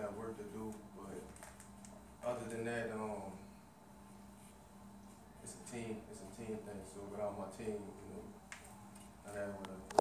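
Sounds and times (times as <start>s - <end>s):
man speaking: 0.0s - 1.3s, 2.2s - 3.4s, 5.4s - 8.4s, 9.2s - 9.9s.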